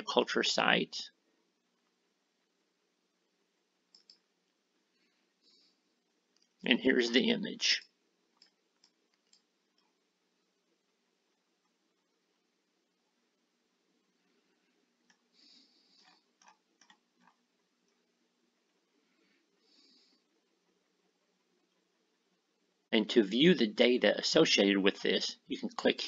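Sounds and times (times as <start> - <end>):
soft hiss: 0.0 - 26.0
faint short clicks: 3.9 - 4.2
computer mouse click: 3.9 - 4.3, 7.8 - 9.9, 16.0 - 17.4.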